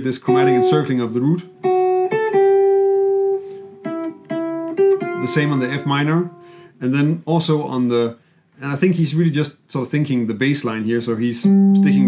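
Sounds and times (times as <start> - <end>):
clean electric jazz guitar notes: 0.1 - 6.9, 11.3 - 12.0.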